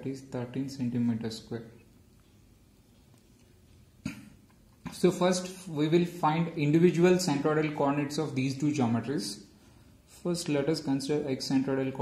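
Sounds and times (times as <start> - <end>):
short cough: 4.0 - 4.4.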